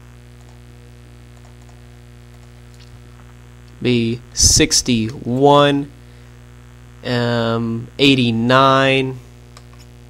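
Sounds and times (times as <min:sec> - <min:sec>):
electrical mains hum: 0:00.0 - 0:10.0
man's voice: 0:03.8 - 0:05.9, 0:07.0 - 0:09.2.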